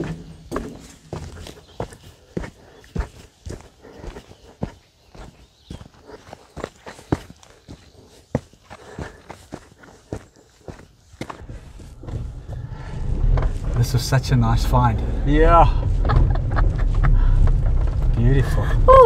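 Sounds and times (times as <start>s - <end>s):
footsteps on dirt path: 0.0s - 13.8s.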